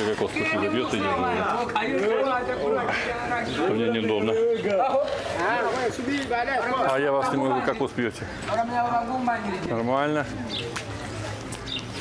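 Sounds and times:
people talking: 0.0s - 11.7s.

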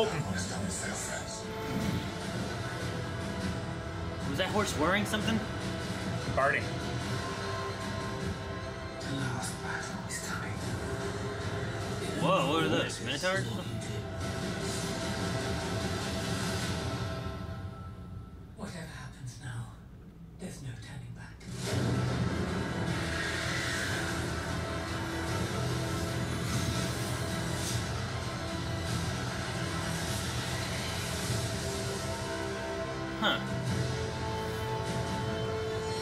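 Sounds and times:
low rumbling film score: 0.0s - 36.0s.

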